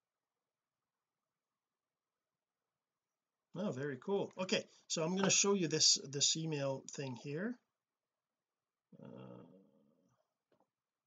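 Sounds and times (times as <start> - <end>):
man humming: 9.0 - 9.6.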